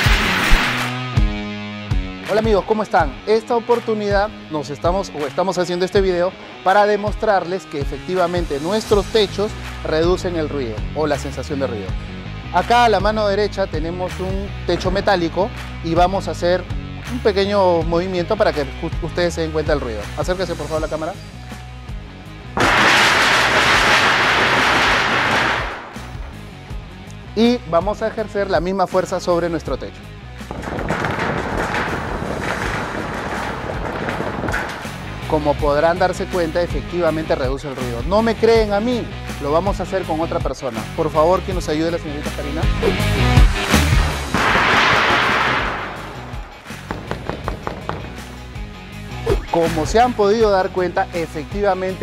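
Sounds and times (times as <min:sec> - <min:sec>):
background music: 0:00.0 - 0:52.0
metal roofing sheet rattling: 0:30.5 - 0:35.2.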